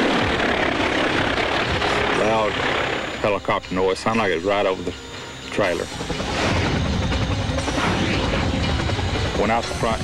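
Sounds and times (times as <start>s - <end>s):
helicopter rotor and engine: 0.0s - 10.0s.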